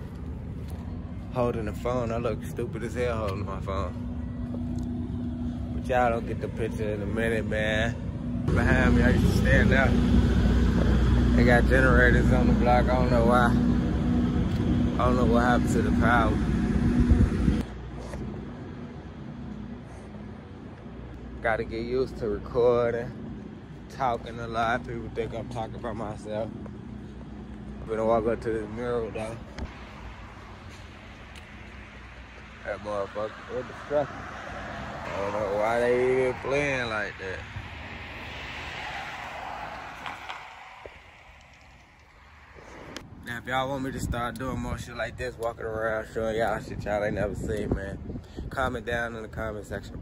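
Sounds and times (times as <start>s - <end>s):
quiet street background: 0.0s - 50.0s
generator running: 3.0s - 32.7s
car driving past: 29.6s - 43.0s.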